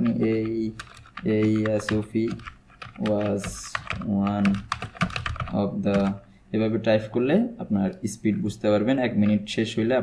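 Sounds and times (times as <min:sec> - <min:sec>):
man talking: 0:00.0 - 0:04.7, 0:05.5 - 0:10.0.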